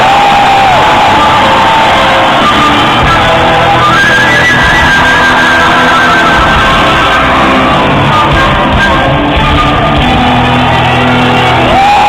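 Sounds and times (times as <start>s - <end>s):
live metal band through pa: 0.0s - 12.0s.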